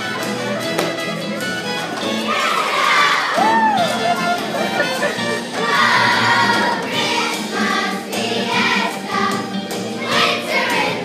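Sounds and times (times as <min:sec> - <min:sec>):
children's choir singing: 0:01.9 - 0:03.4, 0:04.4 - 0:11.0.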